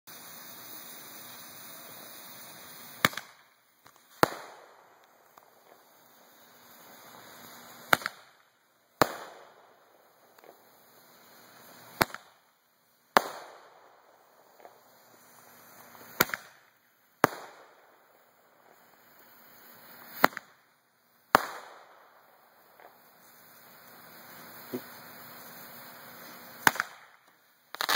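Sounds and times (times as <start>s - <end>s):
firework sharp reports: 0.1s - 27.9s
fuse hissing: 0.1s - 27.9s
small firework pop: 2.9s - 5.9s, 7.8s - 9.6s, 10.3s - 10.7s, 11.9s - 12.4s, 13.1s - 13.7s, 14.5s - 15.2s, 15.8s - 17.9s, 20.0s - 20.7s, 21.3s - 22.0s, 22.6s - 24.0s, 26.2s - 27.9s.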